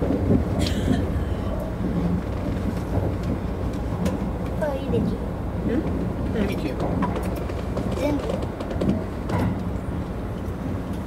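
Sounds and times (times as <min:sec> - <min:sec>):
train wheels rumbling on track: 0:00.0 - 0:11.0.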